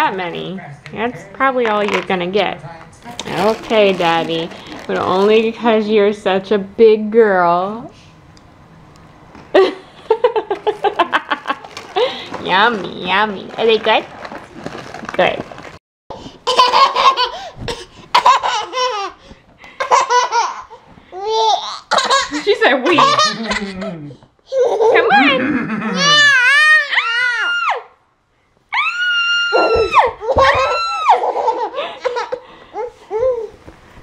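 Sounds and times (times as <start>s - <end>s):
adult laughing: 9.6s - 11.8s, 24.9s - 26.4s
toddler laughing and squealing: 24.5s - 27.8s, 28.8s - 33.6s.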